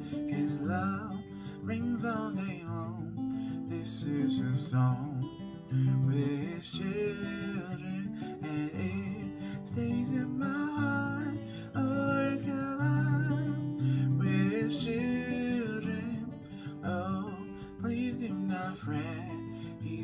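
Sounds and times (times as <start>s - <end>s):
acoustic guitar strumming: 0.0s - 20.0s
man singing: 0.0s - 20.0s.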